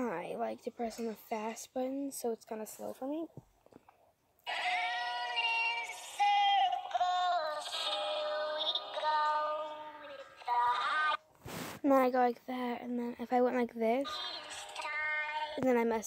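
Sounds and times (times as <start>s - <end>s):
slowed song with singing: 4.4s - 11.2s.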